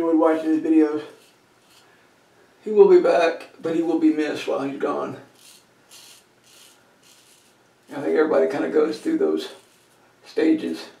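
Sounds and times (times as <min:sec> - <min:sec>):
razor scraping stubble: 0:00.4 - 0:02.0, 0:05.2 - 0:10.4.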